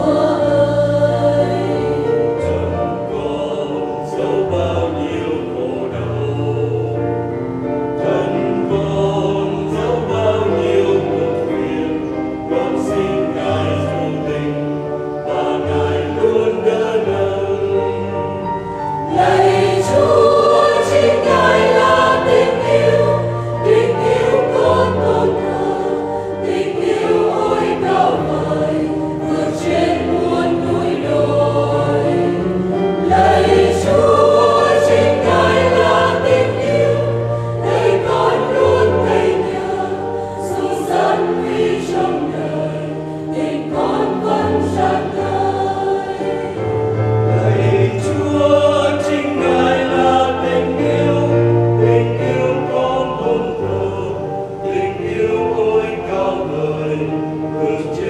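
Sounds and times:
choir singing a hymn: 0:00.0 - 0:58.0.

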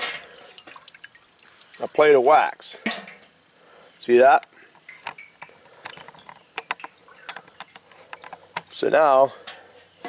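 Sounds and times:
water dripping into water: 0:00.0 - 0:03.3, 0:04.8 - 0:08.7.

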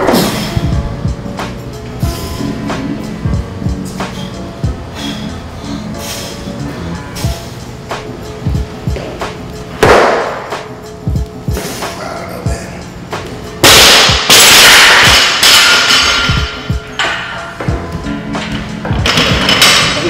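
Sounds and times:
background music with beat: 0:00.0 - 0:20.0
barbell crashing on floor: 0:13.6 - 0:16.6.

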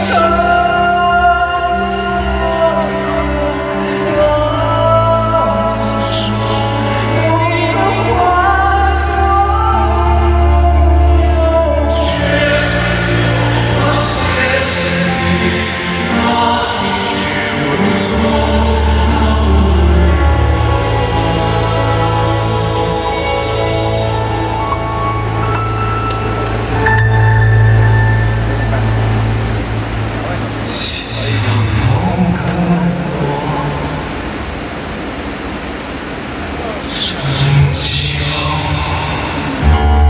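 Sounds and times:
choir singing: 0:00.0 - 0:29.4
sustained chords: 0:00.0 - 0:36.8, 0:38.7 - 0:40.0
concert hall noise: 0:00.0 - 0:40.0.

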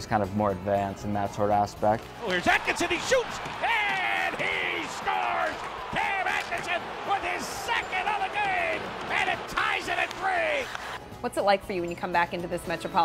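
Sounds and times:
arena noise: 0:02.2 - 0:11.0
announcer excitedly shouting: 0:02.3 - 0:10.7.

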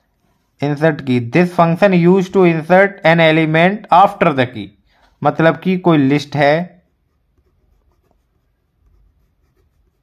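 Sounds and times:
pen drawing on paper: 0:06.8 - 0:10.0.

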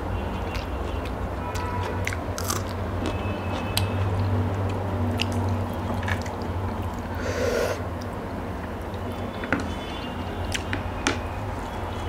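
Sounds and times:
biting and chewing: 0:00.4 - 0:07.1
crisp vegetable crunch: 0:01.8 - 0:03.8.

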